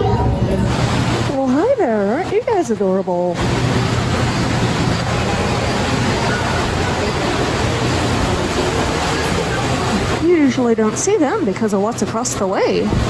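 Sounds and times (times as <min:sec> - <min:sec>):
faint voices: 0:00.0 - 0:13.0
water rushing in a pool: 0:00.0 - 0:13.0.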